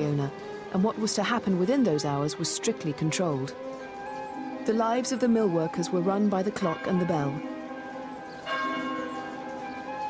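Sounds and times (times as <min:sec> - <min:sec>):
large bell ringing: 0:06.4 - 0:09.7.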